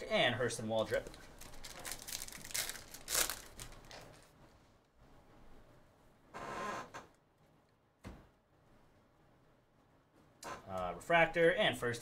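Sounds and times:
foil wrapper crinkling and tearing: 0:00.9 - 0:04.3.

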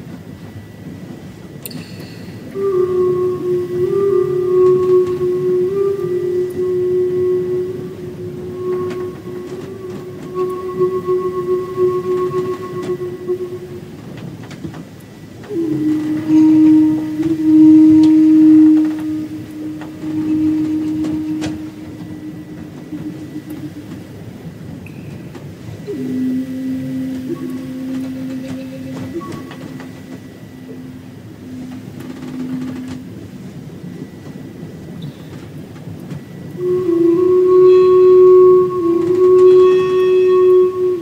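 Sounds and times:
low hiss: 0:00.0 - 0:41.0
flute held notes: 0:01.6 - 0:41.0
faint clicks: 0:07.9 - 0:30.9.

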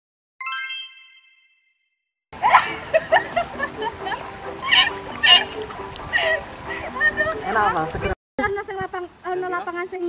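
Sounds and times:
bright bell ding: 0:00.4 - 0:01.8.

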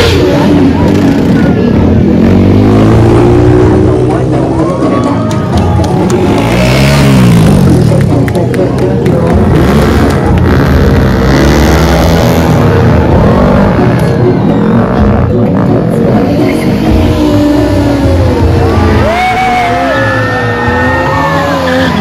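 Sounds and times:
loud music: 0:00.0 - 0:22.0
motorcycle engines revving: 0:00.0 - 0:22.0.

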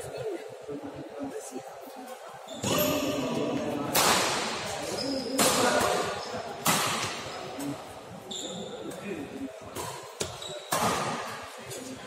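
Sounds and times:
voices in a hall: 0:00.0 - 0:12.0
shoe squeak on court floor: 0:02.5 - 0:03.3, 0:04.8 - 0:05.6, 0:07.2 - 0:09.0, 0:09.9 - 0:11.2
rackets striking shuttlecock: 0:05.4 - 0:07.7.

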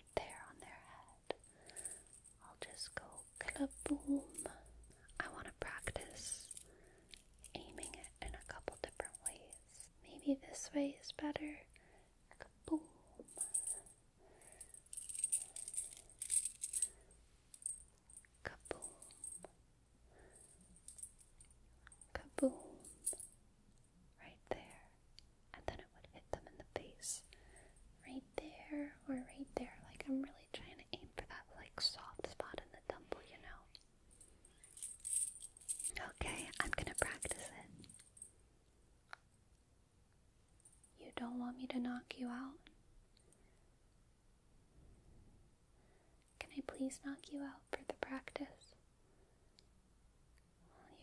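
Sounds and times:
metallic jingling and rattling: 0:01.3 - 0:09.8, 0:13.2 - 0:19.5, 0:20.3 - 0:23.4, 0:34.1 - 0:38.3.

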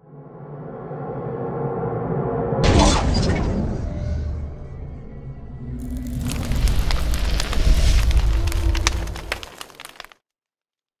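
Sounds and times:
crackling fire-like effects: 0:05.8 - 0:10.2.

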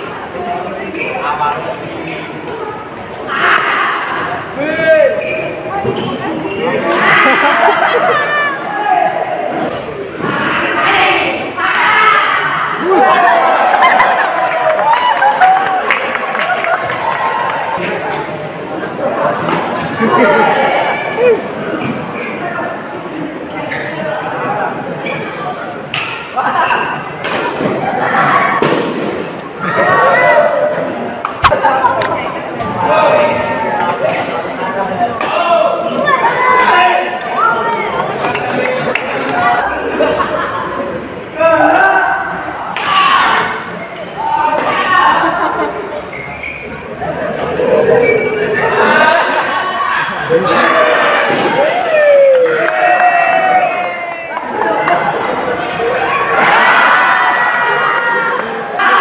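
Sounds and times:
spectators voices and shouts: 0:16.6 - 0:40.1, 0:40.7 - 0:59.0.

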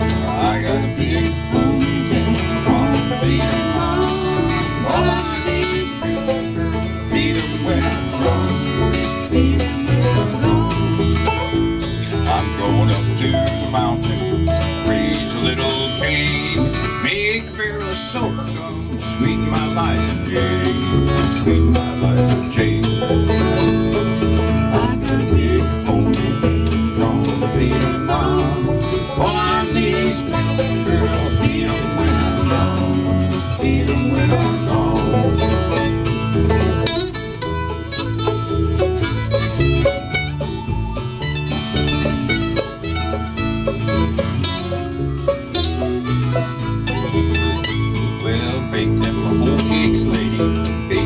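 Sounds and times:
acoustic guitar: 0:00.0 - 0:51.0
banjo: 0:00.0 - 0:51.0
mandolin: 0:00.0 - 0:51.0
upright bass: 0:00.0 - 0:51.0.

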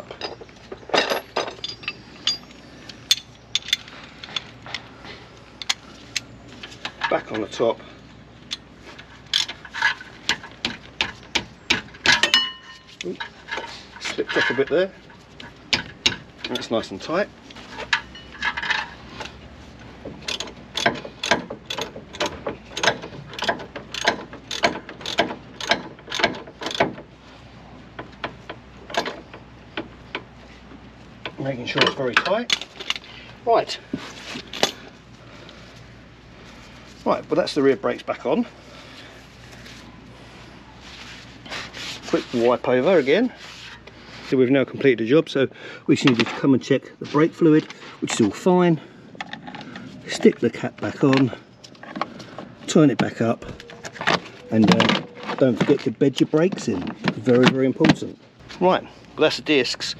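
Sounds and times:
ratchet wrench clicking: 0:20.3 - 0:26.8.

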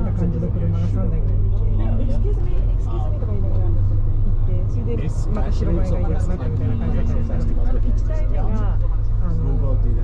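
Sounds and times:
bus engine and road rumble: 0:00.0 - 0:10.0
people talking: 0:00.0 - 0:10.0.

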